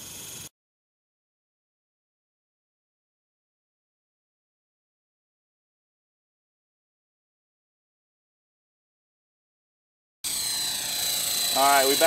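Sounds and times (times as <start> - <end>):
model helicopter motor whine: 0.0 - 0.5, 10.2 - 12.0.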